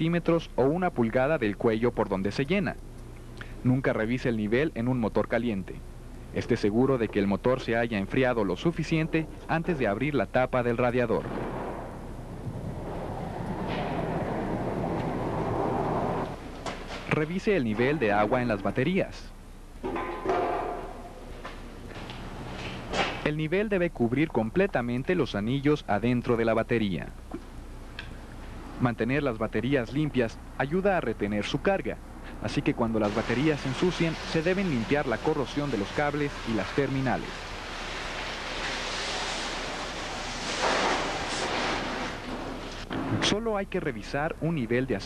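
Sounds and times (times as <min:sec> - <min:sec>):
hose spraying water: 0:32.9 - 0:42.9.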